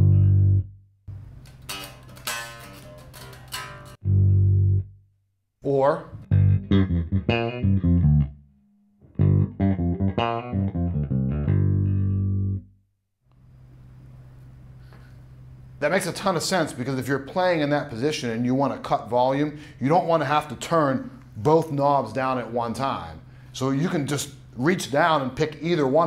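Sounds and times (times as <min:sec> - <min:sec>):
bass guitar through an amp: 0:00.0 - 0:00.8, 0:01.5 - 0:04.9, 0:06.2 - 0:08.4, 0:09.1 - 0:12.7.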